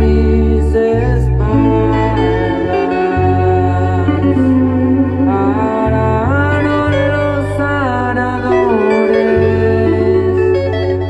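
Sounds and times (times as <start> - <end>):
amplified guitar sustained chords: 0.0 - 11.0
bass line: 0.0 - 11.0.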